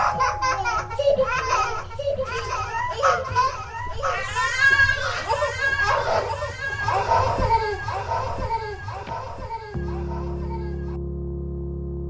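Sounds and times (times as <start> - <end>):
children's voices babbling: 0.0 - 11.0.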